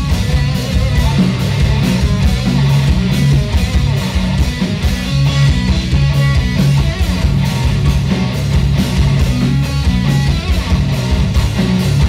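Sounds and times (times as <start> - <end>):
live band playing loudly: 0.0 - 12.0.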